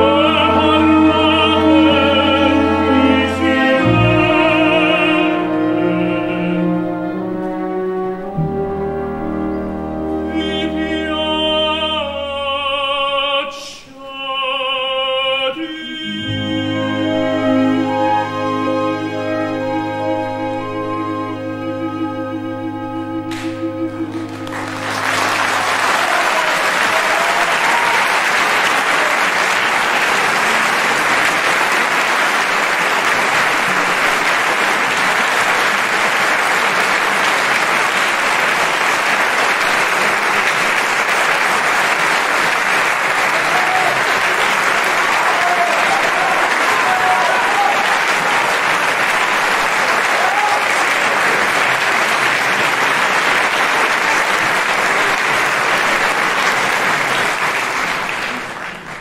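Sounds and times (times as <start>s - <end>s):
orchestra chord: 0.0s - 12.6s, 16.0s - 26.4s
audience applauding: 23.3s - 59.0s.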